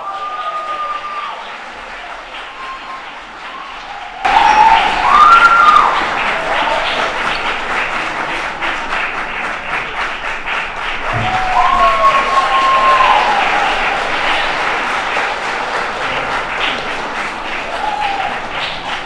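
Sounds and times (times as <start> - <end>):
whoops: 0.0 - 1.6, 2.4 - 7.0, 11.0 - 14.6, 17.5 - 18.9
audience applauding and cheering: 0.0 - 19.0.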